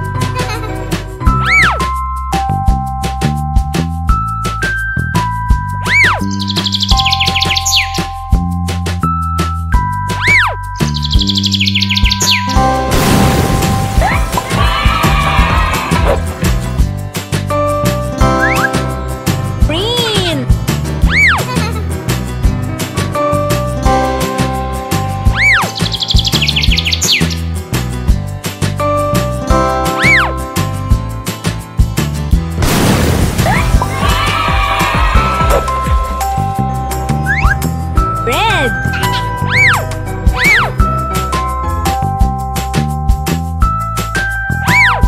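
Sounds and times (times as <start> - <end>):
children's music with steady beat: 0.0 - 12.9, 14.0 - 32.5, 33.7 - 44.8
high bird chirps: 5.8 - 8.1, 10.2 - 12.6, 25.3 - 27.5, 38.8 - 40.8.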